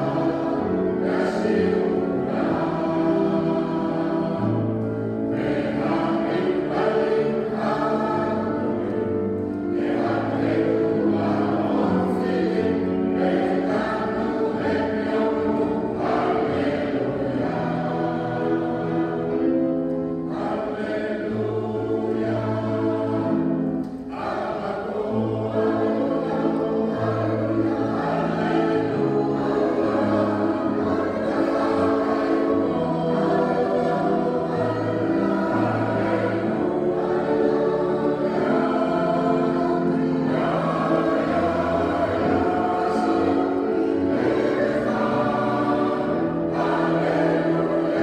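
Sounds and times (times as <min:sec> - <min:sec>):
mixed choir singing: 0:00.0 - 0:48.0
piano accompaniment: 0:00.0 - 0:48.0.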